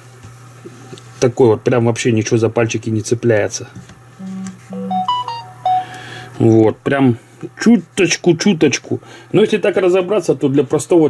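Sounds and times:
faint electrical hum: 0.0 - 11.0
person humming mm-hmm: 4.2 - 5.1
electronic beep tune: 4.2 - 6.3.

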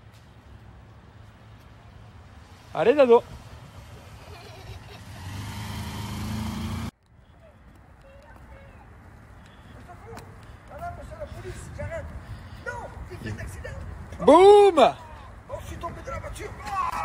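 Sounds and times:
street sound: 0.0 - 17.0
motor vehicle running: 3.3 - 7.0.

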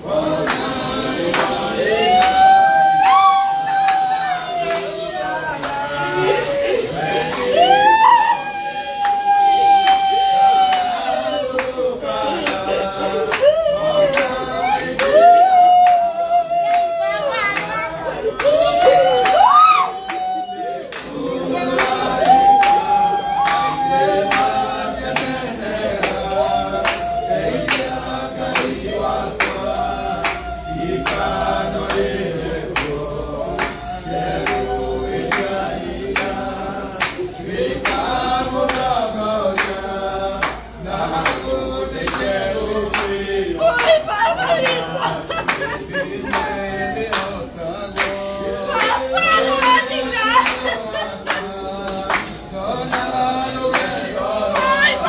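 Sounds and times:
people singing a hymn: 0.0 - 55.0.

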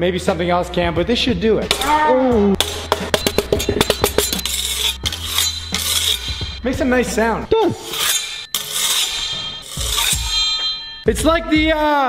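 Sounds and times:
metal blade striking brick wall: 2.6 - 11.1
metallic ringing: 2.6 - 11.2.

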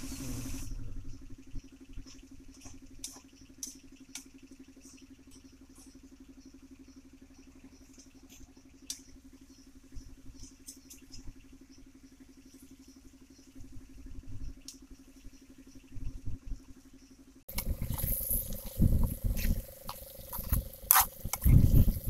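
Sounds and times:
faint steady hum: 0.0 - 22.0
wok stir-frying over fire: 17.5 - 22.0.

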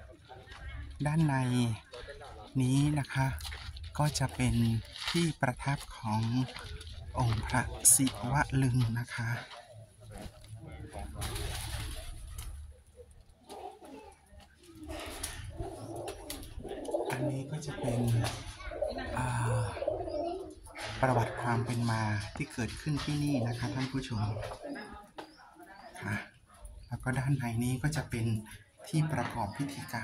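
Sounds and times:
pigeons cooing: 9.7 - 21.4, 23.0 - 26.9.

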